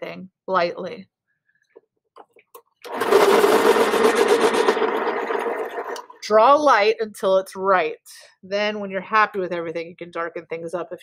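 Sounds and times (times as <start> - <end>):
electric pencil sharpener grinding: 2.8 - 6.1.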